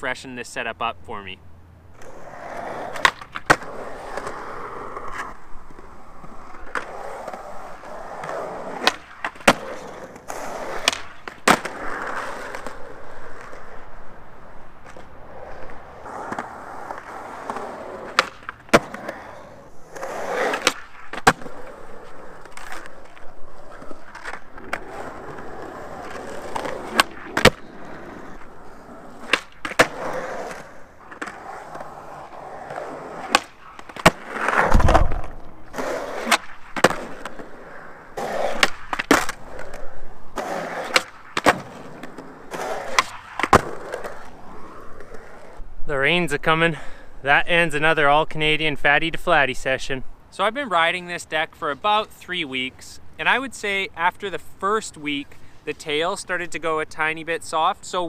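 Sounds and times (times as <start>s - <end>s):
skateboard wheels rolling on concrete: 0.0s - 58.0s
skateboard clacks: 2.0s - 13.8s, 14.4s - 45.5s.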